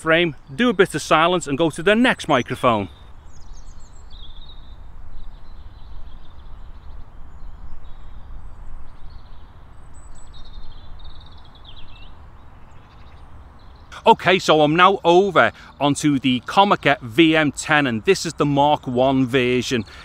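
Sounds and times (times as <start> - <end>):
birds calling: 0.0 - 20.0.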